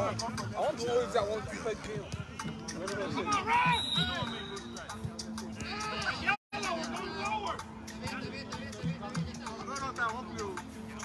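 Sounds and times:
men calling and talking: 0.0s - 11.0s.

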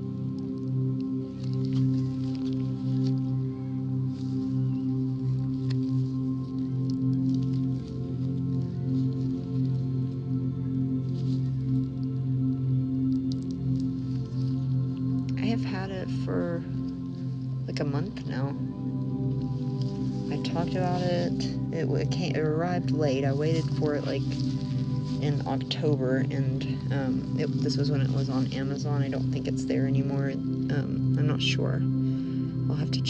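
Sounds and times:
ambient background music: 0.0s - 33.0s.

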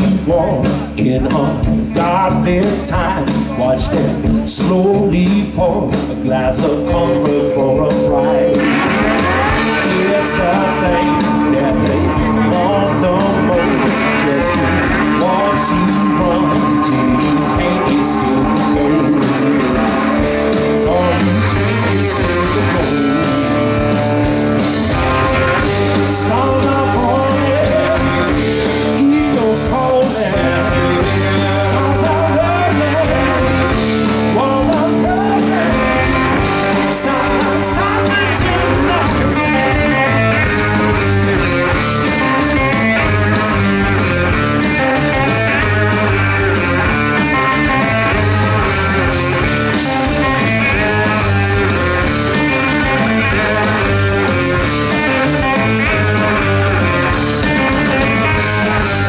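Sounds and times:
blues-rock band playing: 0.0s - 59.0s
drums: 0.0s - 59.0s
electric guitar bending notes: 4.2s - 59.0s.

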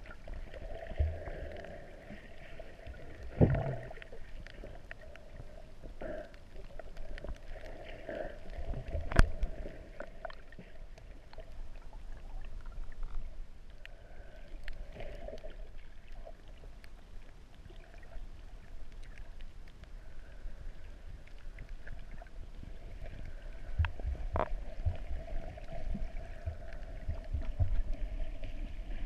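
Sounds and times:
low rumble of moving seawater: 0.0s - 29.0s
muffled underwater ambience: 0.0s - 29.0s
low thump of moving water: 3.2s - 4.0s, 25.9s - 28.6s
faint clicks: 3.2s - 11.6s.

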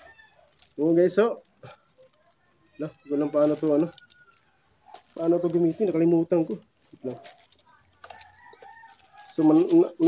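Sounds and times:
rooster crowing faintly: 7.1s - 10.0s.

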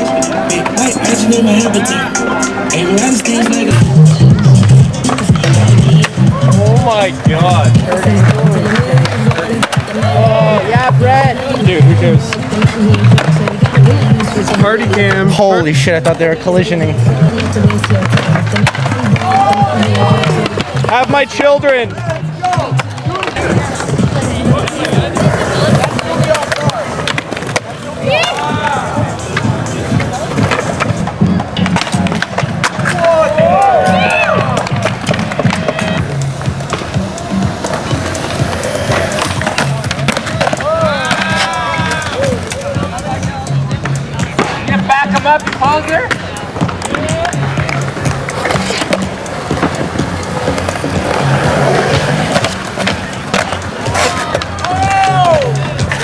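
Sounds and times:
music: 0.0s - 56.0s
skateboard wheels rolling on concrete: 0.0s - 56.0s
skateboard clacks: 2.8s - 56.0s.

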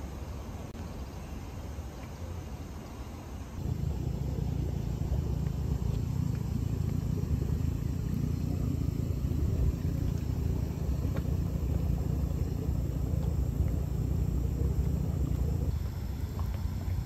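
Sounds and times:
mud pools bubbling: 0.0s - 17.0s.

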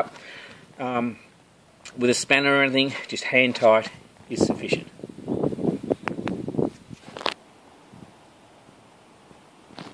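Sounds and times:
handling rustling: 6.1s - 7.4s.

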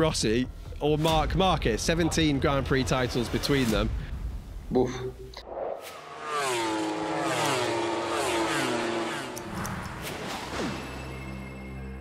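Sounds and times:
loud racing motorcycle engine: 5.9s - 9.5s.

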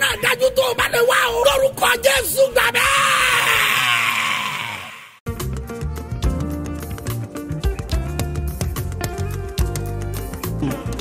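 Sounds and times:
crowd shouting and cheering: 0.0s - 5.2s
music: 5.2s - 11.0s.

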